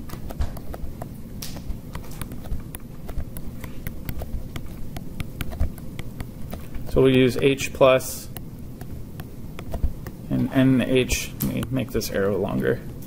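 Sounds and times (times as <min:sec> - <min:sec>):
stylus tapping on tablet screen: 0:00.1 - 0:07.6, 0:08.3 - 0:10.2.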